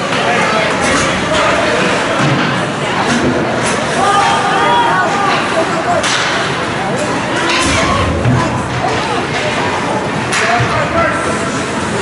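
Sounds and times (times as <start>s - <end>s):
arena hubbub: 0.0s - 12.0s
shouting voices: 3.8s - 11.4s.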